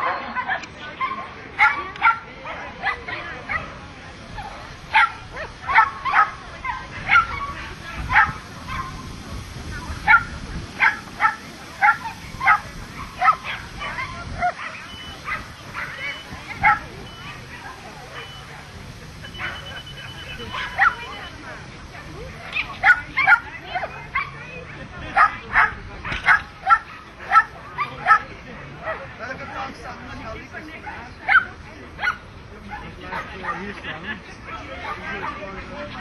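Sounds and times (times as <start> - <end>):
dog barking high yips: 10.1 - 18.4, 19.4 - 21.2.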